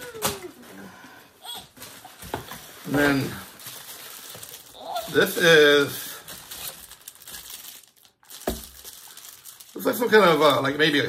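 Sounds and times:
plastic bag crinkling: 1.4 - 11.0.

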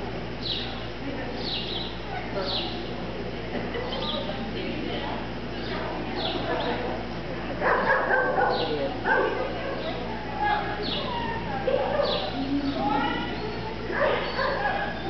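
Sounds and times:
dog barking and yipping: 7.6 - 9.4, 11.0 - 12.3, 13.9 - 15.0.

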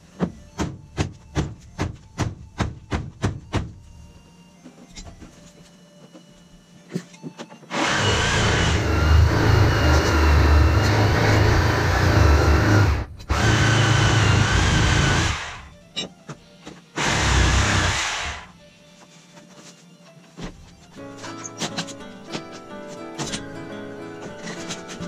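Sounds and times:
handheld power tool running: 7.7 - 15.7, 17.0 - 18.5.

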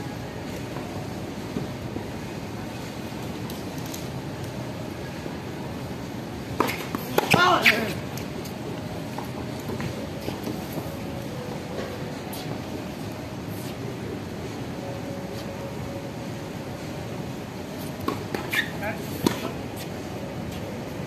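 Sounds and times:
steady background noise: 0.0 - 21.0
racket striking tennis ball: 6.6 - 7.9, 18.0 - 19.6.

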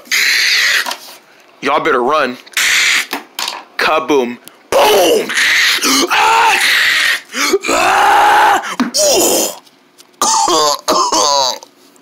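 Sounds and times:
quavering cry: 0.0 - 0.9, 2.6 - 3.1, 4.7 - 9.6
person yelling: 4.7 - 9.5.

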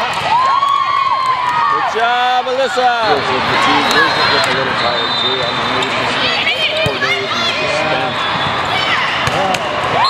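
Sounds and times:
people shouting and calling: 0.0 - 10.0.

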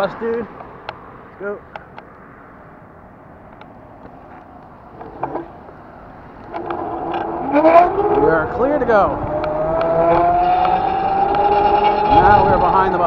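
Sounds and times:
bus engine and drive whine: 0.0 - 13.0.

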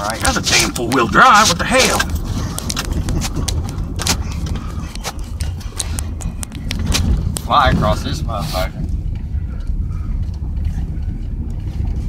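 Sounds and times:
engine and tyres rumbling: 0.0 - 12.0
ticks and crackles under tyres: 0.0 - 12.0.

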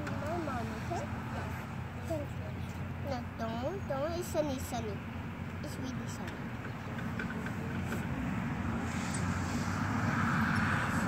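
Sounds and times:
freeway traffic rushing: 0.0 - 11.0.

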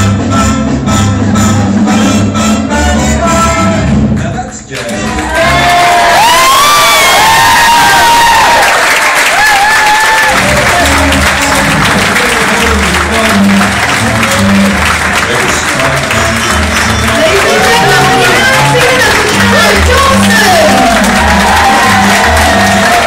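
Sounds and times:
music with steady bass line: 0.0 - 5.7, 10.3 - 23.0
song: 0.0 - 6.7, 9.8 - 23.0
audience applause and cheering: 4.7 - 23.0.

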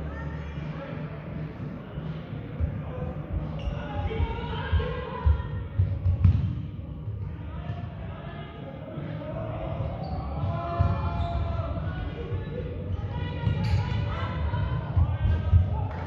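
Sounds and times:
players shouting in echoing hall: 0.0 - 16.0.

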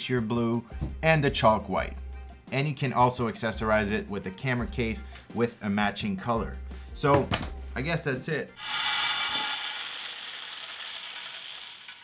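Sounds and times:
coffee beans pouring: 8.6 - 12.0.

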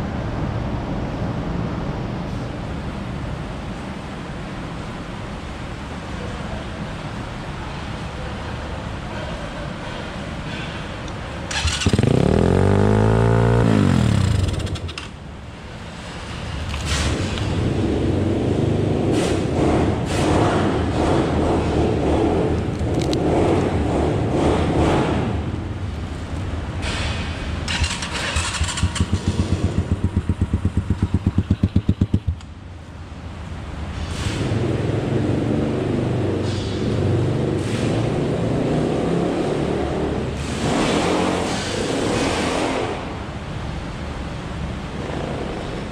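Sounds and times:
dirt bike engine revving: 11.5 - 15.1, 27.7 - 32.4.

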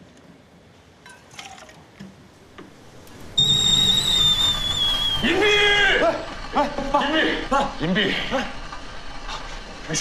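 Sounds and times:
loud shrill whistle: 3.2 - 6.0.

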